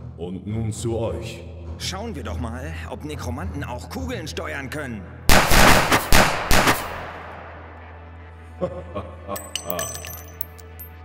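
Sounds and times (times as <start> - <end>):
gunshots with reverberant tail: 5.3 - 8.0.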